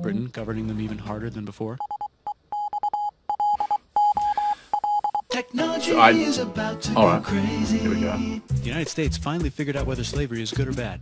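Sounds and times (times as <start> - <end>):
morse code beeps: 1.8 - 5.3.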